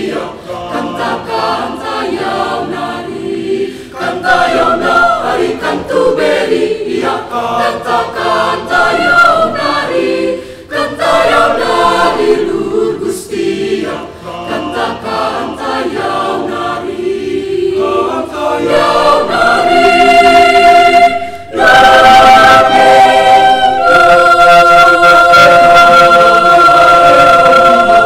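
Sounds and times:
choir singing in parts: 0.0 - 28.0.

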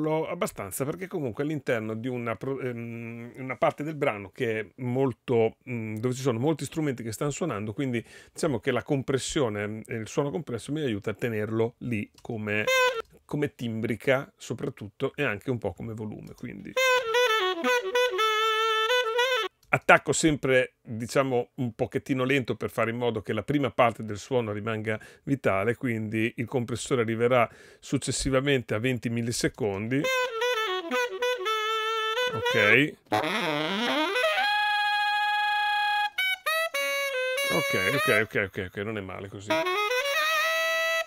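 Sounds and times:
saxophone playing: 12.6 - 13.0, 16.7 - 19.6, 29.9 - 38.4, 39.5 - 41.0.

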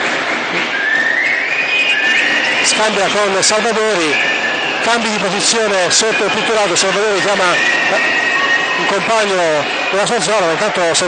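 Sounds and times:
arena crowd noise: 0.0 - 11.0
rising whistle: 0.6 - 11.0.

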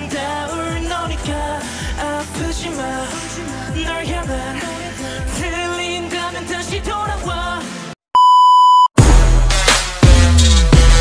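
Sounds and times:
pop song with male vocals: 0.0 - 8.0
loud steady beep: 8.2 - 9.0.

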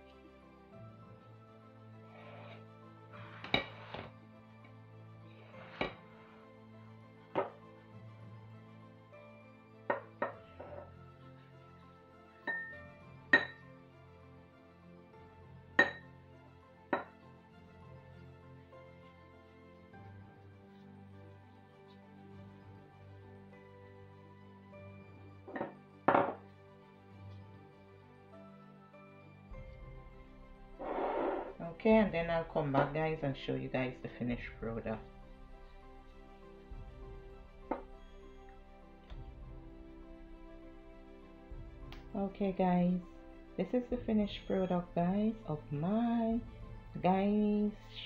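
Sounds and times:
background music: 0.0 - 48.0.

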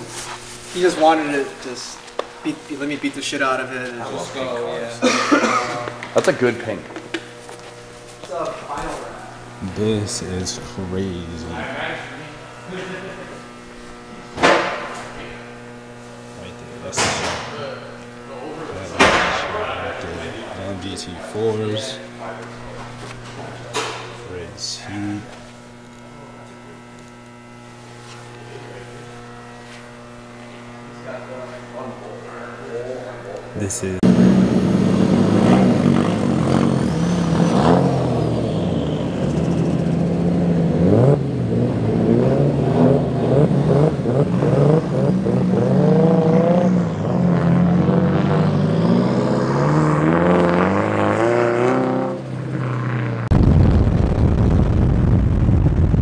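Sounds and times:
electrical hum: 0.0 - 56.0
men talking: 0.7 - 7.3, 8.2 - 15.5, 16.3 - 26.9, 28.3 - 29.8, 30.4 - 34.1
short cough: 5.0 - 5.9.

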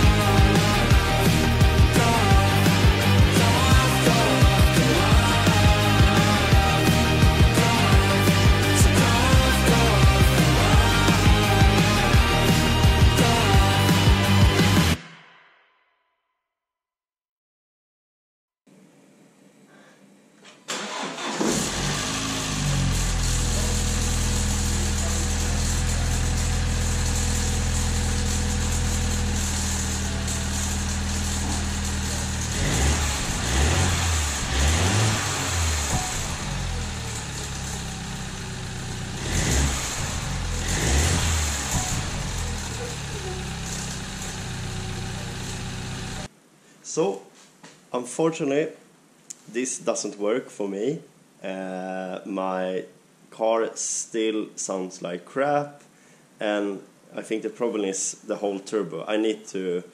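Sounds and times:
car engine starting and idling: 0.0 - 15.0, 20.7 - 46.3
engine revving blips: 20.9 - 46.3.

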